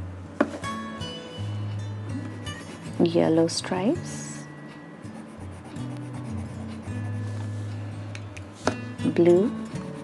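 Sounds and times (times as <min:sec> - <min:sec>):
soft background music: 0:00.0 - 0:10.0
coloured pencil rubbing on paper: 0:05.1 - 0:07.6.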